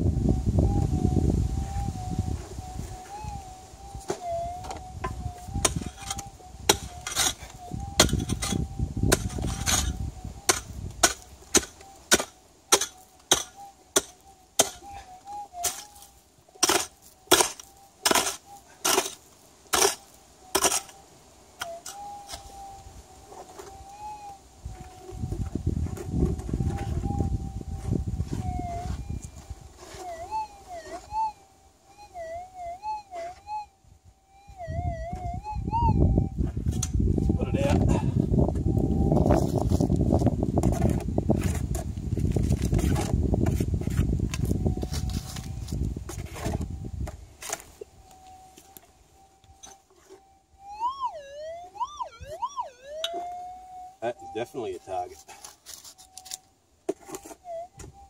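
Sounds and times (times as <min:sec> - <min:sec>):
detector tone warbling: 0:00.4 - 0:19.2, 0:23.6 - 0:25.5, 0:26.6 - 0:38.1, 0:47.7 - 0:56.4, 0:57.2 - 0:58.0
metal detector tone: 0:00.6 - 0:19.2, 0:21.6 - 0:38.0, 0:44.3 - 0:56.5, 0:57.1 - 0:58.0
pick striking gravelly soil: 0:02.9 - 0:21.0.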